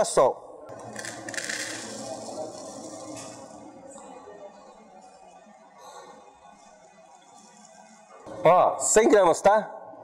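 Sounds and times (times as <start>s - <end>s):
seeds pouring into plastic cup: 0.9s - 3.5s.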